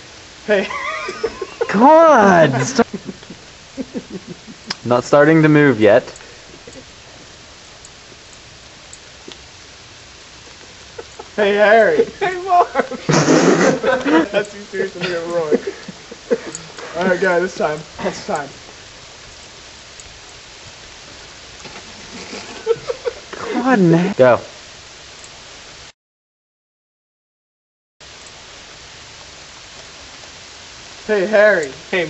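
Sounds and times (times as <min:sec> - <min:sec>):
outdoor background hiss: 0:00.0 - 0:25.9, 0:28.0 - 0:32.0
faint ticks: 0:04.1 - 0:04.9, 0:06.1 - 0:09.5, 0:10.4 - 0:11.4, 0:15.8 - 0:17.2, 0:18.1 - 0:20.4, 0:25.1 - 0:25.4, 0:28.2 - 0:28.4.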